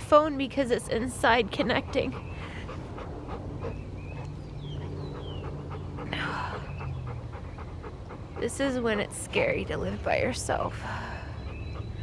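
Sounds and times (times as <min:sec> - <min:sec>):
dog panting: 0:01.0 - 0:10.0, 0:11.4 - 0:12.0.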